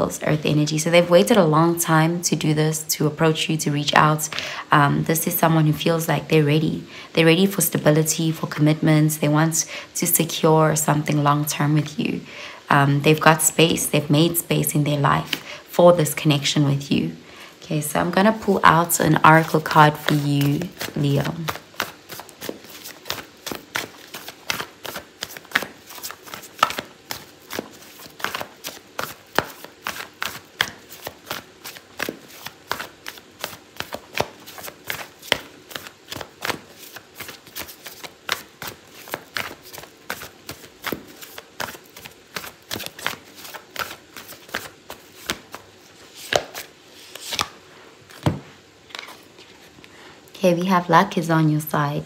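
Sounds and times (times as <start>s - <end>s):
cards being shuffled by hand: 18.3s - 49.9s.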